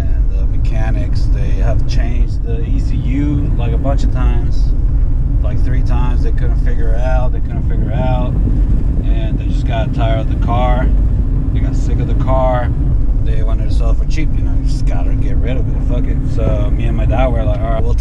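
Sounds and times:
man talking: 0.0s - 4.8s, 5.4s - 8.4s, 9.0s - 18.0s
car engine and road noise: 0.0s - 18.0s.

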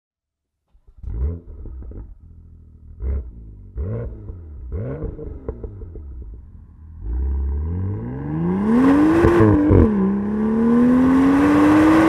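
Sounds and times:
car engine starting: 0.7s - 12.0s
car engine idling: 0.8s - 7.9s
exhaust revving blips: 1.0s - 12.0s.

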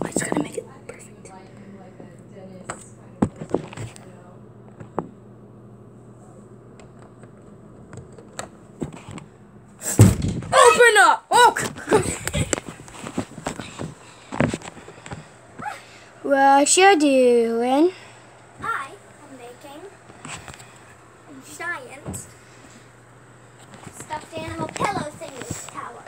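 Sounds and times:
knocks and thuds: 9.8s - 10.6s.

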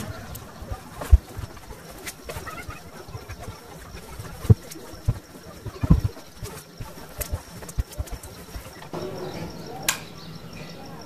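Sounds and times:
fabric rustling: 0.0s - 8.9s.

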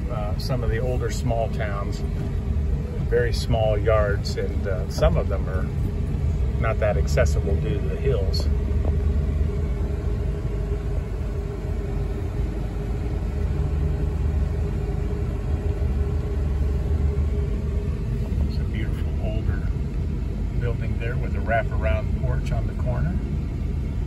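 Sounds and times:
car road and engine rumble: 0.0s - 24.0s.

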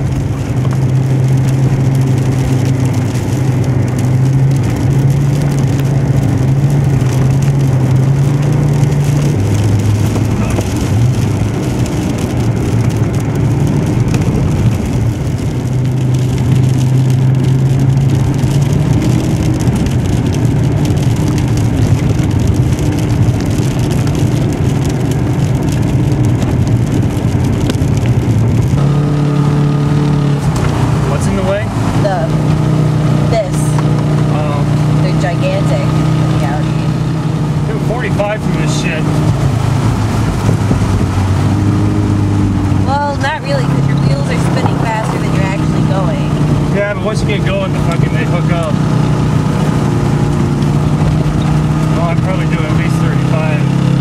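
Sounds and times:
car engine from inside cabin: 0.0s - 54.0s
tyre and wind noise: 0.0s - 54.0s.

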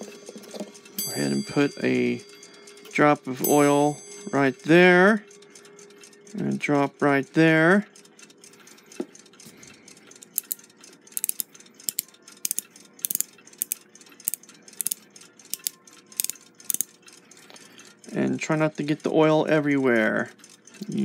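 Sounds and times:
light metallic clicks and ticks: 0.0s - 21.0s.

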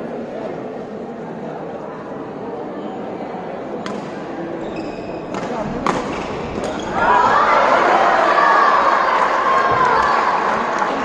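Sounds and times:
racket hitting shuttlecock: 3.8s - 4.3s, 5.3s - 6.9s
spectators cheering and shouting: 6.6s - 11.0s.

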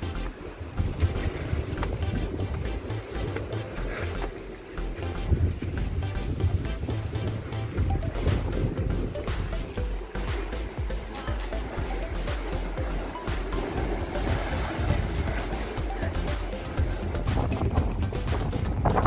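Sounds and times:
background music: 0.0s - 19.0s
wind buffeting microphone: 0.6s - 4.3s, 5.0s - 10.0s, 13.8s - 19.0s.

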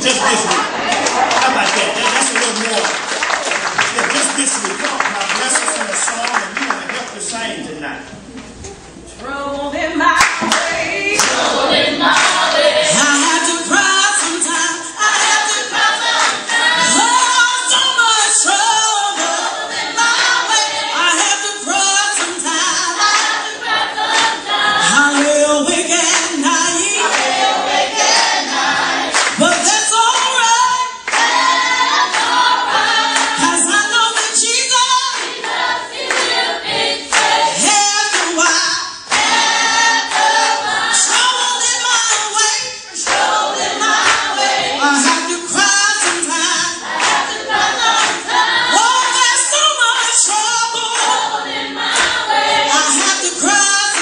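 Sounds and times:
congregation singing gospel song: 0.0s - 54.0s
hand-clapping: 0.4s - 7.3s, 10.2s - 11.5s, 12.1s - 12.5s, 16.2s - 16.8s, 25.0s - 25.4s, 27.0s - 27.5s, 29.1s - 30.5s, 31.1s - 33.5s, 35.2s - 36.4s, 37.1s - 38.4s, 39.1s - 41.4s, 42.0s - 45.3s, 46.0s - 48.4s, 50.9s - 51.2s, 51.9s - 54.0s.

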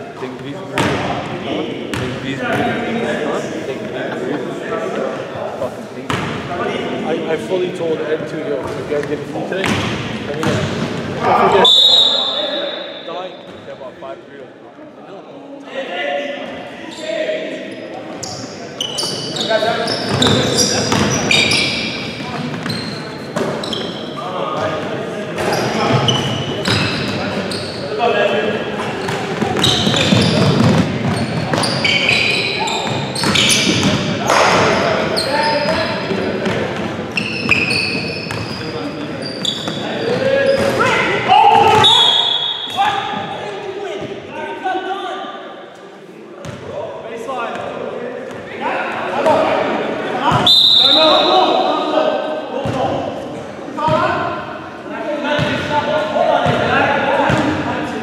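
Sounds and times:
sneakers squeaking: 0.2s - 2.9s, 8.6s - 13.7s, 16.4s - 44.3s, 46.4s - 46.8s, 49.2s - 54.1s, 55.4s - 57.6s
players calling out: 48.5s - 54.4s.

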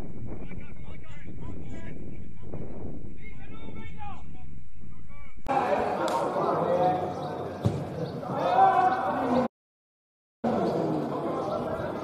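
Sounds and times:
people talking: 5.1s - 9.5s, 10.5s - 12.0s
football being kicked: 7.6s - 8.0s.

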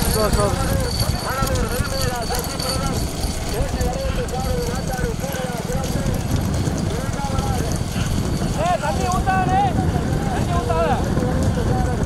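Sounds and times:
hooves clattering on tarmac: 0.0s - 12.0s
motorcycles running: 0.0s - 12.0s.

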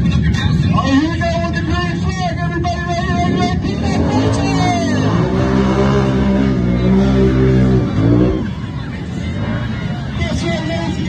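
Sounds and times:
atv engine revving: 1.9s - 11.0s
background music: 3.1s - 11.0s.

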